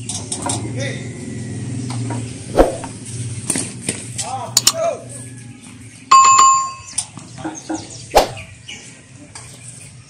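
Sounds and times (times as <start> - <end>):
bell chime: 6.1 - 7.0.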